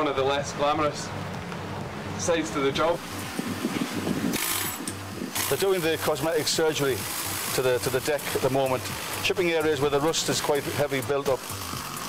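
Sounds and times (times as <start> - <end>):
power chipping tools on steel: 4.3 - 12.0.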